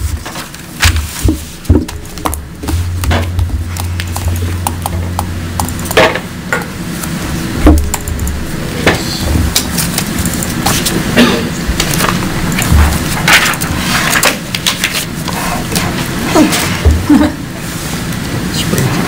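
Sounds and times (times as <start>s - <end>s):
low thuds of microphone bumped: 1.2s - 5.6s.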